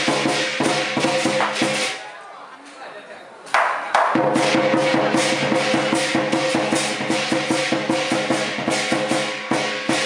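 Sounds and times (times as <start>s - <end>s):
drum cymbals and gong rhythm: 0.0s - 2.0s, 4.1s - 10.0s.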